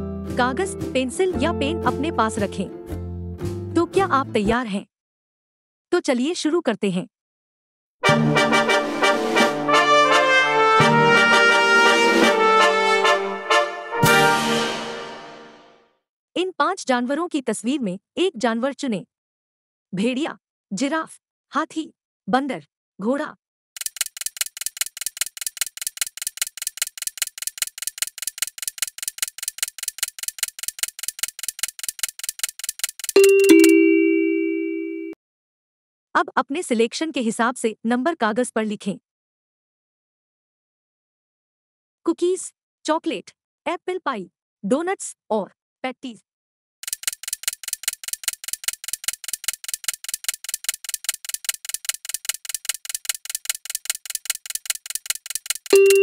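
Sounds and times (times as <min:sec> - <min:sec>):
fast clock ticking: 0:23.8 - 0:33.7, 0:46.8 - 0:56.0.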